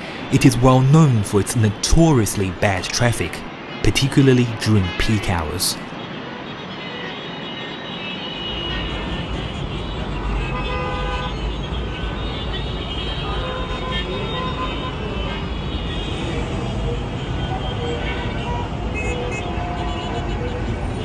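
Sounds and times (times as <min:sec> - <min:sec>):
traffic rumble: 0:00.0 - 0:06.4, 0:08.5 - 0:21.0
car horns honking: 0:03.6 - 0:21.0.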